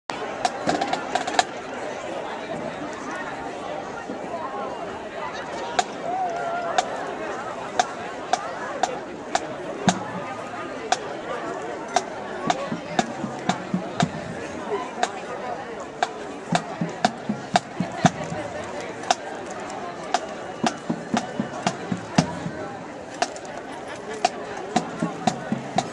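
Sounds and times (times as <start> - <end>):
murmur of crowd voices: 0.1 - 25.9
sharp wooden percussion knocks: 8.3 - 10.3, 12.0 - 15.2, 16.0 - 19.2, 20.1 - 23.5, 24.8 - 25.9
soft low drum thuds: 9.8 - 10.5, 12.4 - 15.2, 16.5 - 19.2, 20.1 - 23.3, 24.8 - 25.9.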